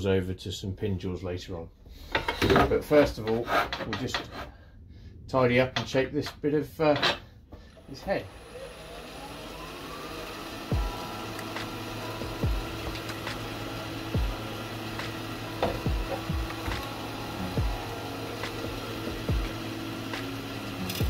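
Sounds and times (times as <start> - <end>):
wood lathe motor whining: 7.7 - 21.0
background music with low beat: 10.3 - 21.0.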